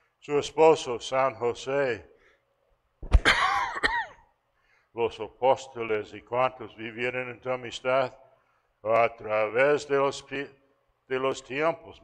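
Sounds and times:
man coughing: 3.2s - 4.3s.

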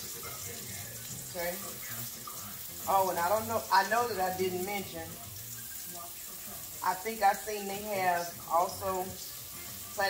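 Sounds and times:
meatballs sizzling in oil: 0.0s - 10.0s.

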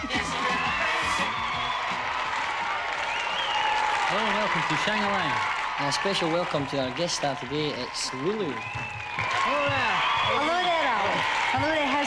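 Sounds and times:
audience applauding and cheering: 0.0s - 12.0s
high shout: 0.0s - 12.0s.

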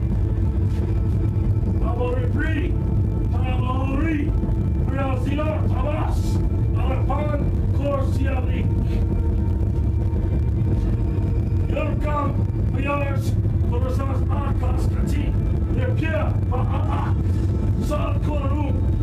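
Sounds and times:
steady low rumble: 0.0s - 19.0s
indistinct voices talking: 1.6s - 19.0s.

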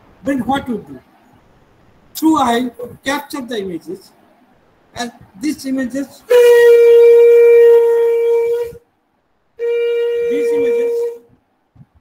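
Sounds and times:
loud steady tone: 6.3s - 8.8s, 9.6s - 11.4s.

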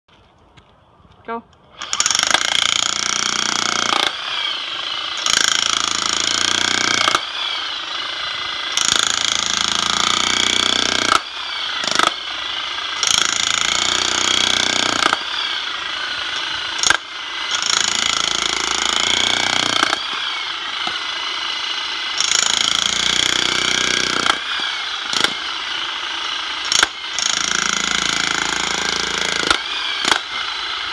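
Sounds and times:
jackhammer hammering into soil: 1.7s - 30.9s.

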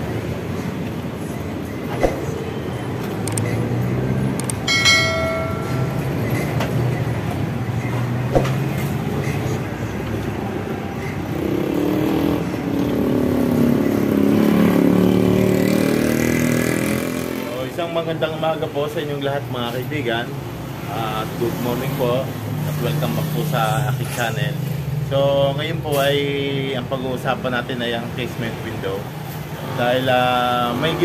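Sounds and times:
vehicles passing: 0.0s - 31.0s
ringing chime: 4.7s - 6.6s.

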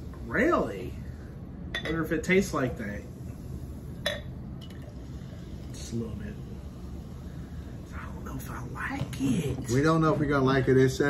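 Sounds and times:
glass clink: 1.7s - 2.0s, 4.0s - 4.8s.

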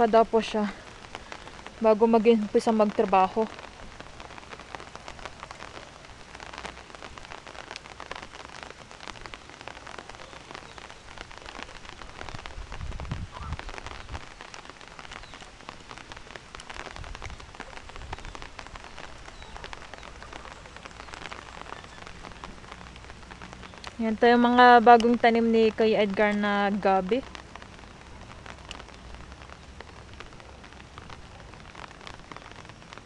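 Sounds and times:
rain falling: 0.0s - 33.0s.

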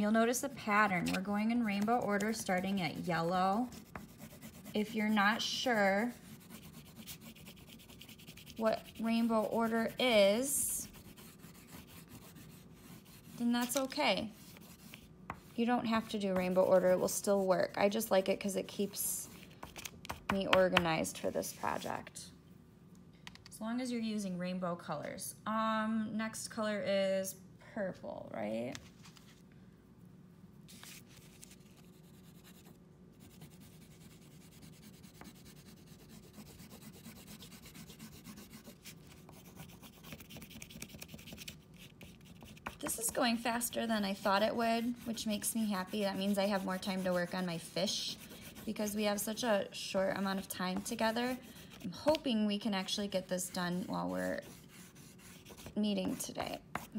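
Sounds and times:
oil pastel scrubbing on paper: 0.0s - 19.4s, 30.7s - 56.9s.

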